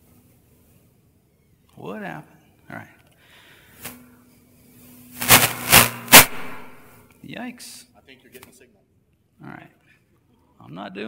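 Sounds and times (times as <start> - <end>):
crackling static bursts: 5.0 - 7.0.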